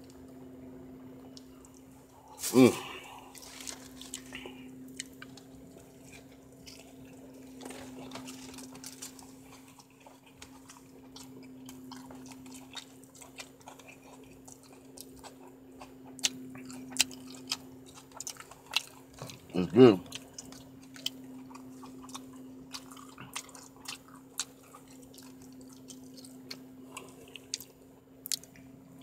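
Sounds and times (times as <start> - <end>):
steady low hum: 0.0 - 29.0
person chewing: 1.3 - 29.0.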